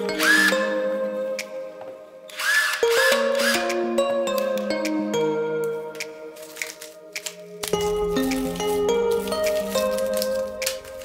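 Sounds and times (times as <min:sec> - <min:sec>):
background music: 0:00.0 - 0:11.0
cordless drill whining: 0:00.2 - 0:00.5, 0:02.3 - 0:03.7.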